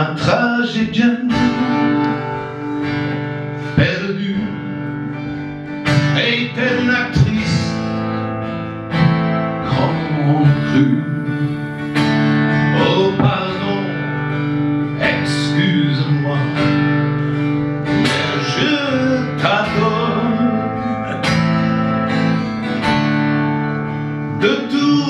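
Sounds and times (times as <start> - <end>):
acoustic guitar strumming: 0.0 - 25.0
bending melody line: 9.0 - 25.0.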